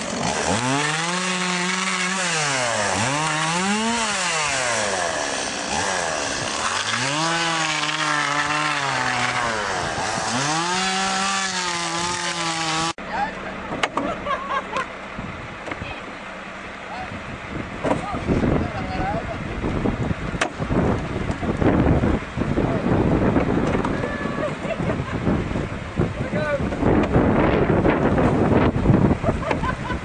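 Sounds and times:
chainsaw cutting a log: 0.0 - 13.0
outdoor background: 0.0 - 30.0.

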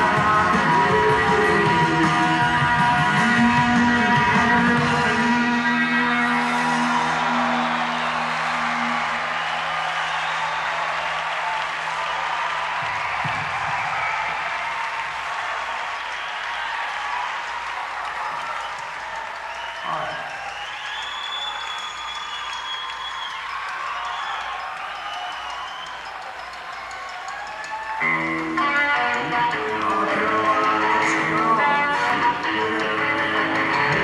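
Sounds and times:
crowd applauding and cheering: 0.0 - 34.0
crowd whistles and shouts: 0.0 - 34.0.

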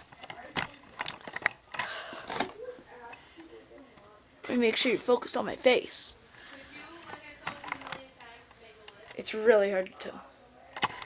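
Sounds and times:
camera handling clicks and knocks: 7.1 - 8.1.

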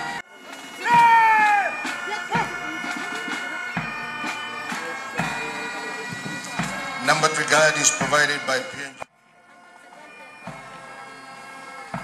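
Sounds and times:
bagpipes playing a tune: 0.0 - 12.0
low drum beat: 0.9 - 8.8.

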